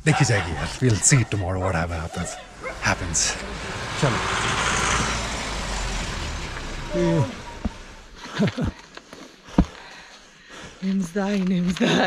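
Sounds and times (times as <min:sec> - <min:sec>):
vehicle driving past: 0:02.2 - 0:08.3.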